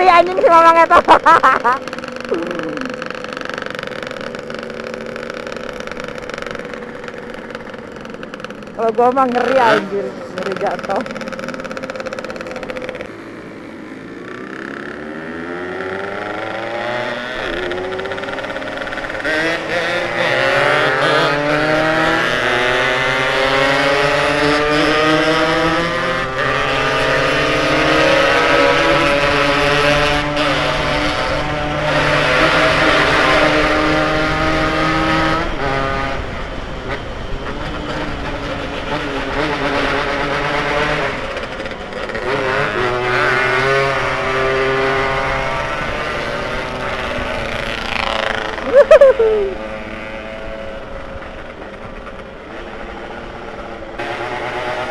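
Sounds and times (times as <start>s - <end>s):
motorcycle engine pulling hard: 0.0s - 54.9s.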